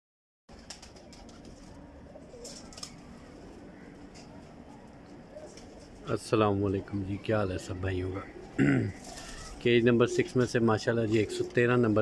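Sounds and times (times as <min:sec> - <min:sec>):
pigeons cooing: 0:00.5 - 0:12.0.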